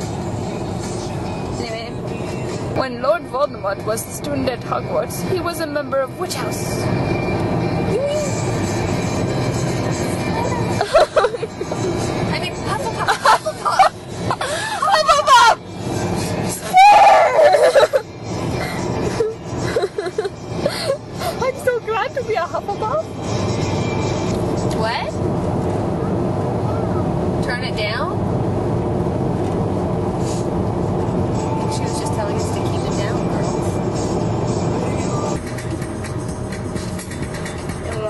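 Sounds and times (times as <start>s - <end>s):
car road noise: 0.0s - 38.0s.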